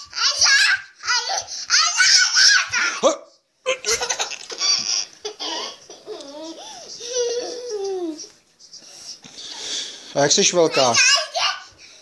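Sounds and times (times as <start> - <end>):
toddler girl laughing: 3.7 - 8.3.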